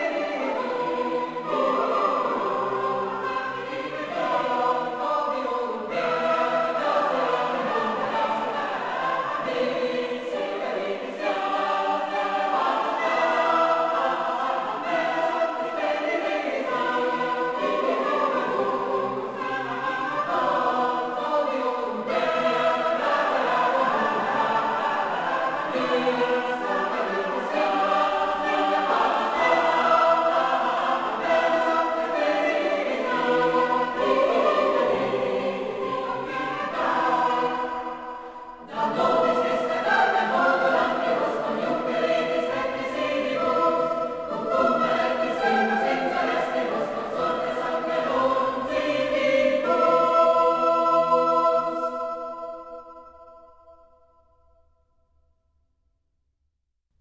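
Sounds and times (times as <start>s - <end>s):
choir singing slow chords: 0.0s - 55.1s.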